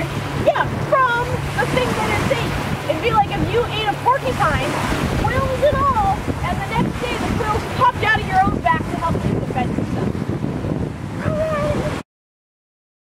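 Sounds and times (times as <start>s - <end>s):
surf: 0.0s - 12.0s
wind rumbling on microphone: 0.0s - 12.0s
high-pitched voices talking: 0.5s - 9.7s.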